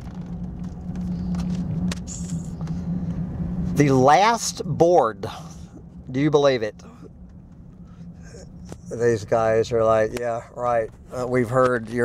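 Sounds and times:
engine and road noise in cabin: 0:00.0 - 0:12.0.

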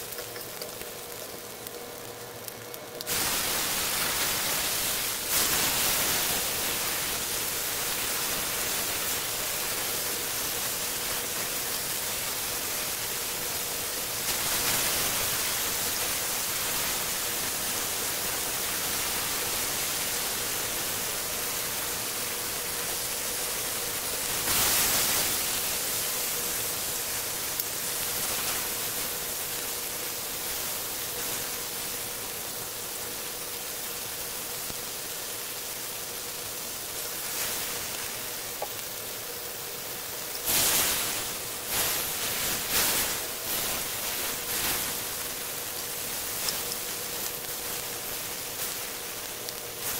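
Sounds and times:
faint steady hum: 0:00.0 - 0:49.9
steaks sizzling in a pan: 0:00.0 - 0:49.9.

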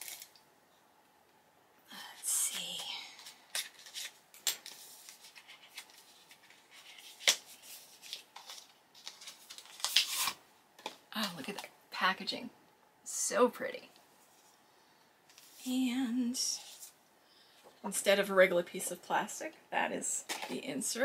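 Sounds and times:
packaging crinkling and tearing: 0:00.0 - 0:00.4, 0:03.2 - 0:10.4.

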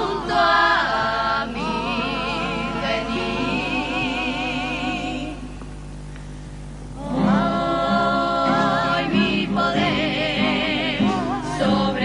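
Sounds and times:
chorus singing in harmony: 0:00.0 - 0:05.5, 0:07.0 - 0:12.0.

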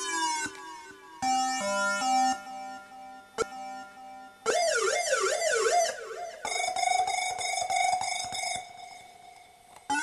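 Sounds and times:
low steady electronic tone: 0:00.0 - 0:10.0.

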